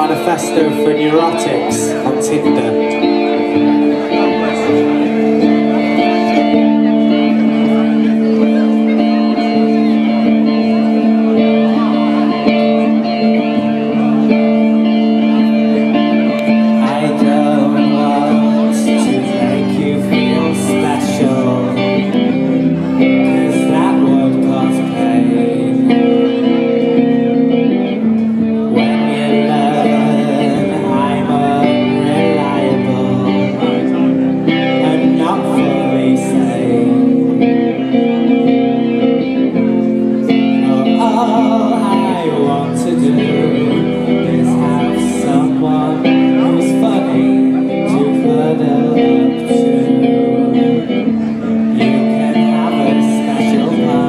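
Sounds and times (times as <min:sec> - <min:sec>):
sustained electric guitar chord: 0:00.0 - 0:54.0.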